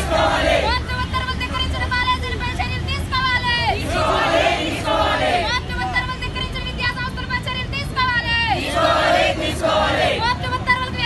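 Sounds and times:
crowd chanting: 0:00.0 - 0:00.9, 0:03.5 - 0:05.6, 0:08.5 - 0:10.4.

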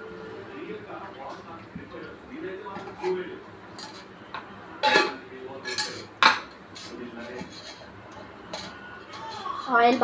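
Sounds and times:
metal utensils clinking: 0:04.8 - 0:07.9.

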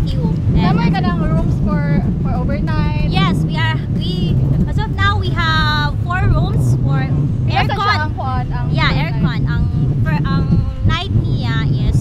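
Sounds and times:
steady low rumble: 0:00.0 - 0:12.0
women talking: 0:00.0 - 0:12.0.

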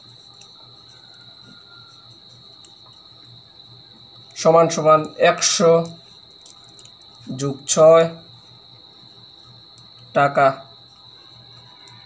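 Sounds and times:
high-pitched whine: 0:00.0 - 0:12.0.

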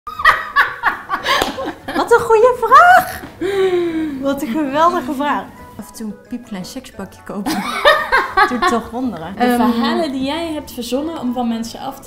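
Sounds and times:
woman laughing heartily: 0:00.1 - 0:02.0, 0:07.5 - 0:08.7.

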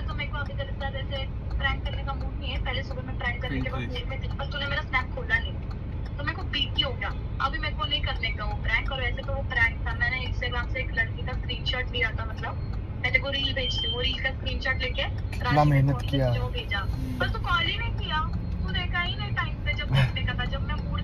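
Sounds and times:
road rumble inside car: 0:00.0 - 0:21.0
person talking: 0:03.4 - 0:04.1, 0:15.4 - 0:17.5, 0:19.9 - 0:20.2.

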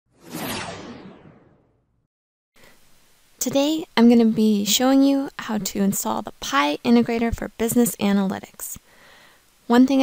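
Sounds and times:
whoosh sound effect: 0:00.1 - 0:01.9.

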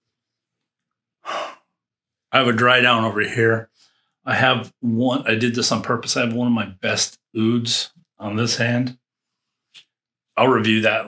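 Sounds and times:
man sighing: 0:01.3 - 0:01.6.

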